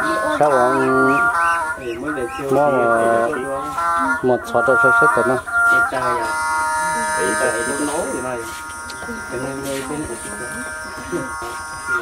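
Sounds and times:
people talking: 0:00.0 - 0:12.0
steady buzzing drone: 0:00.0 - 0:12.0.

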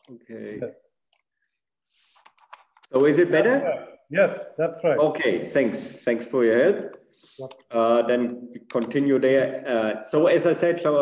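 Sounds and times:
person speaking: 0:00.0 - 0:01.2, 0:02.8 - 0:11.0.

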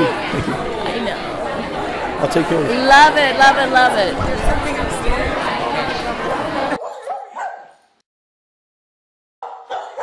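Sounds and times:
crowd chatter: 0:00.0 - 0:07.7.

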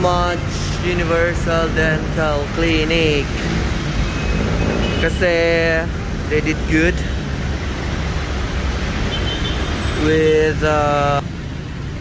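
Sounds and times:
rumble of passing cars: 0:00.0 - 0:12.0.

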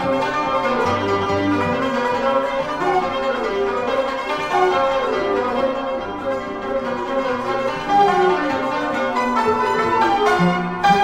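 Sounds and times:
traditional ensemble instrumental music: 0:00.0 - 0:11.0.

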